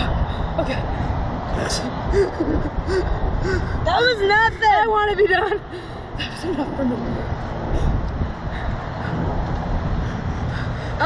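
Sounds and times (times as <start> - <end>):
wind rushing across microphone: 0.0 - 11.0.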